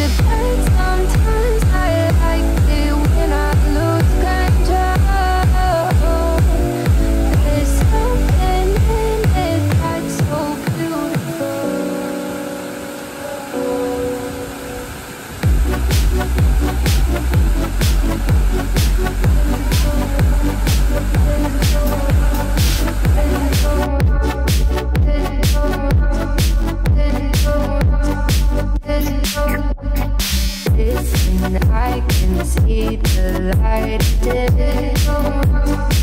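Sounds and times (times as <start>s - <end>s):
music with beat and deep bass: 0.0s - 12.2s, 15.4s - 36.0s.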